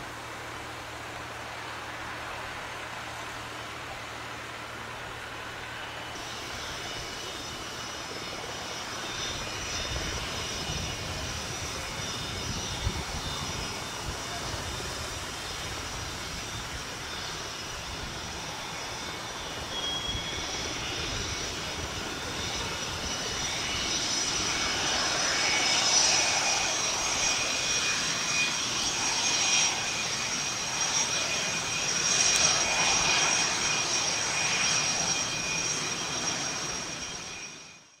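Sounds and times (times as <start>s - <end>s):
high-pitched turbine whine: 0.0s - 38.0s
jet engine rumble: 0.0s - 38.0s.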